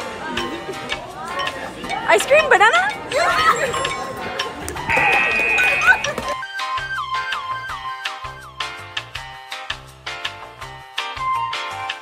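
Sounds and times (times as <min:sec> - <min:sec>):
girls laughing and shrieking: 0:03.1 - 0:04.2, 0:04.9 - 0:06.4
high-pitched squeal: 0:04.9 - 0:06.2.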